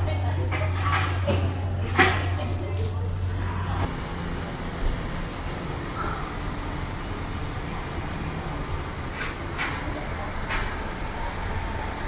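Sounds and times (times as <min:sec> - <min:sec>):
road traffic rumble: 0:01.5 - 0:12.0
low engine hum: 0:02.3 - 0:12.0.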